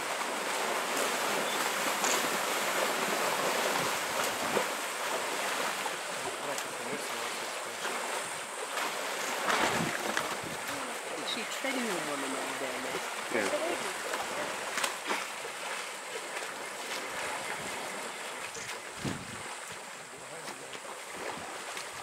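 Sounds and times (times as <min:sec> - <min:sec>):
elephants splashing in mud: 0:00.0 - 0:22.0.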